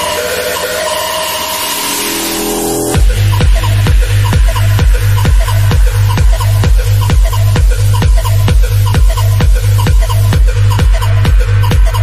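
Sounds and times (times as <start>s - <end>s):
rising noise sweep: 1.2s - 3.9s
held synth tones: 1.3s - 3.1s
kick drum beat: 3.0s - 12.0s.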